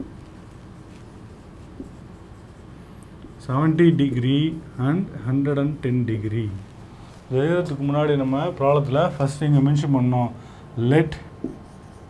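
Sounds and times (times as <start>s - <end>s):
marker writing on whiteboard: 0.0s - 3.8s, 11.2s - 12.0s
low room hum: 0.0s - 12.0s.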